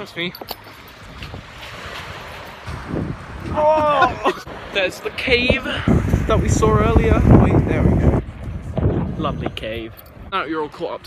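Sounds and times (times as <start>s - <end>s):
wind on microphone: 0.7s - 10.7s
low rumbling: 5.2s - 10.4s.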